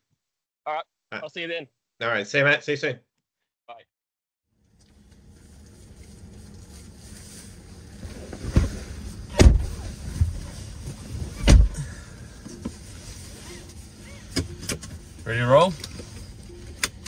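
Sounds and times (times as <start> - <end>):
car doors shutting: 8.0 - 12.8.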